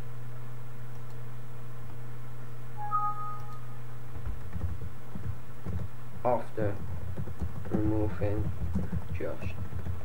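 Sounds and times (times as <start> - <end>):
low hum: 2.6 - 4.2
two-tone beep: 2.8 - 3.7.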